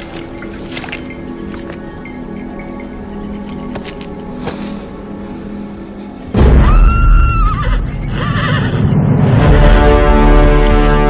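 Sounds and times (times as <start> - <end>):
loud film music: 0.0 - 11.0
horse whinnying: 7.2 - 9.0.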